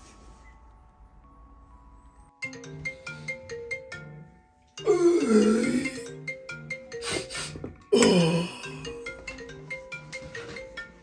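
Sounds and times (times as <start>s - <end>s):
smartphone ringtone melody: 2.2s - 7.6s, 8.4s - 11.0s.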